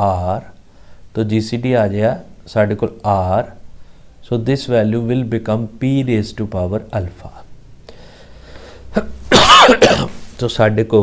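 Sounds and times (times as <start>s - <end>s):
man coughing: 8.9s - 10.3s.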